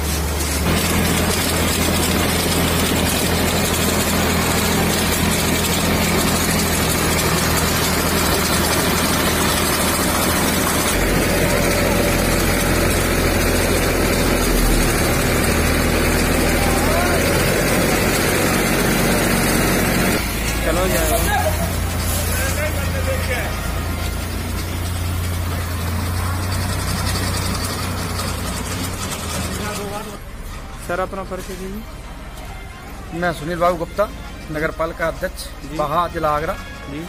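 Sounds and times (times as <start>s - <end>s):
sprayer engine running: 0.0s - 30.2s.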